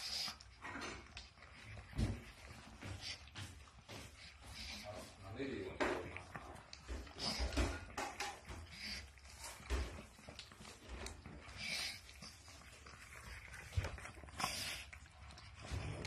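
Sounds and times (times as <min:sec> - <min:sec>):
dog breathing noises: 0:00.0 - 0:16.0.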